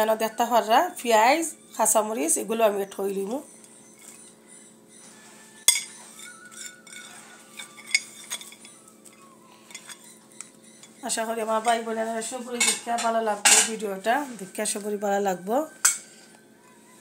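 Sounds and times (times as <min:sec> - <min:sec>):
faint steady hum: 0:00.0 - 0:17.0
dishes clinking: 0:05.6 - 0:10.1, 0:12.6 - 0:13.8, 0:15.8 - 0:16.2.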